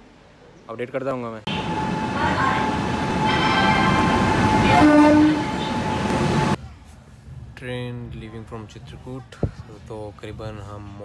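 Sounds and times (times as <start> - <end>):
train horn: 1.5 - 6.6
train rumbling: 1.5 - 9.1.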